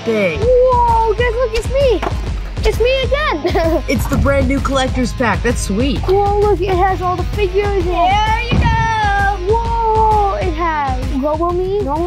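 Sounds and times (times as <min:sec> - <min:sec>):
background music with beat: 0:00.4 - 0:12.0.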